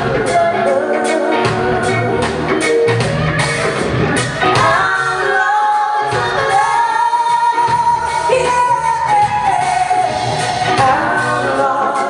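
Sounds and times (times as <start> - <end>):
live pop band: 0.0 - 12.0.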